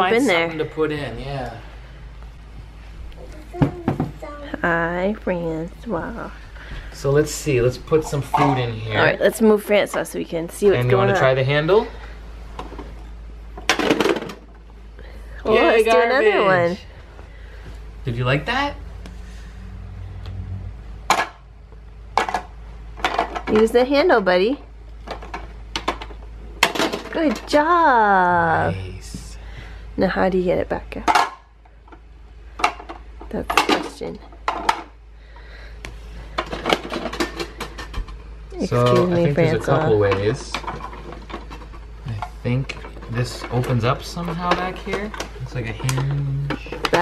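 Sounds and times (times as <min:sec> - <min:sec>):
faint room noise: 0:00.0 - 0:47.0.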